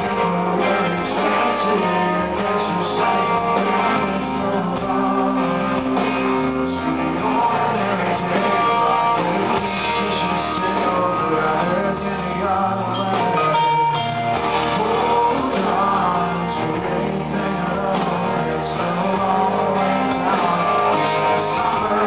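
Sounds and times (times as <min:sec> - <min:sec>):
live rock band playing: 0:00.0 - 0:22.0
man singing lead vocal: 0:00.0 - 0:22.0.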